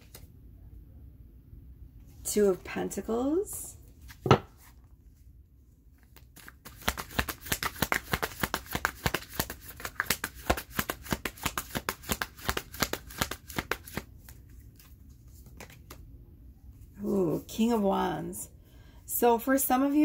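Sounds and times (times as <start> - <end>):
cards being shuffled by hand: 6.0 - 16.1.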